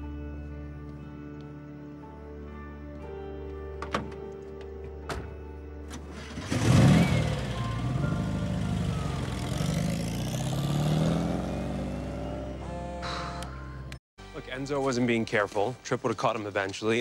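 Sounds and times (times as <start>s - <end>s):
soft background music: 0.0s - 17.0s
car engine starting and revving: 5.9s - 12.6s.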